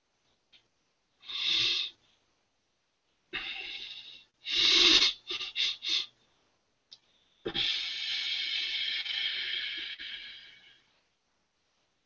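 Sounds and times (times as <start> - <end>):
man breathing heavily: 3.4 - 6.2, 7.1 - 10.9.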